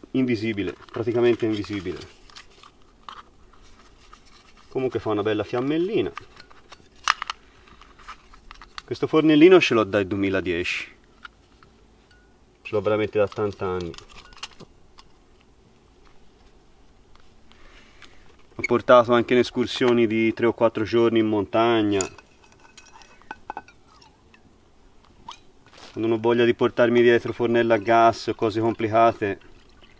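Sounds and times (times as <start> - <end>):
faint outdoor background: 0.0 - 29.9.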